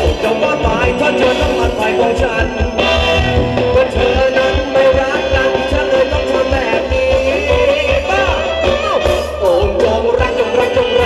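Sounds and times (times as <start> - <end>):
live band playing dance music: 0.0 - 11.0.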